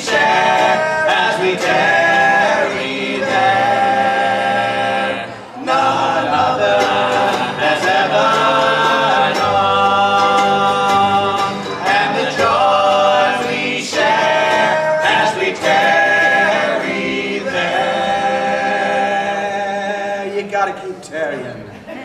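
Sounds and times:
mandolin: 0.0s - 19.7s
picked acoustic guitar: 0.0s - 20.2s
male trio singing a hymn: 0.0s - 20.5s.

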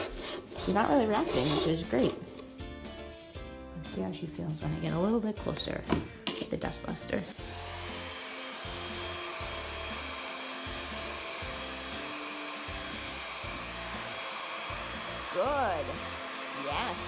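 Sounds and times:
background music: 0.0s - 17.0s
handheld vacuum whirring: 7.4s - 17.0s.

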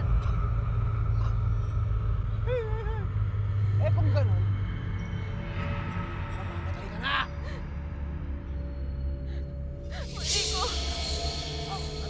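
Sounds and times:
high-pitched wordless vocal sounds: 9.9s - 12.0s.

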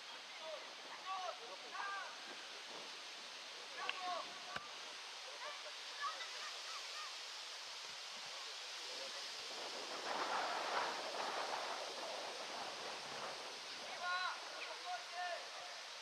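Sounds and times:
microphone hiss: 0.0s - 16.0s.

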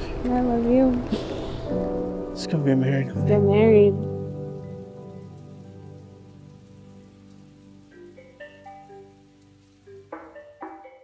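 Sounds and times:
background music: 0.0s - 11.0s
steady rain: 0.0s - 11.0s
marimba-like melody: 7.9s - 11.0s.

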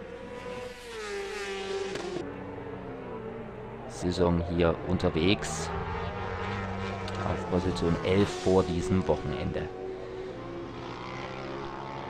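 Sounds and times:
motorcycle passing at high revs: 0.0s - 12.0s
low engine drone: 2.2s - 12.0s.

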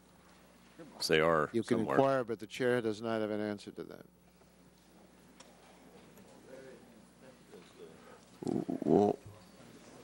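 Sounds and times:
faint room hum: 0.0s - 10.0s
man's voice close to microphone: 8.4s - 9.2s.

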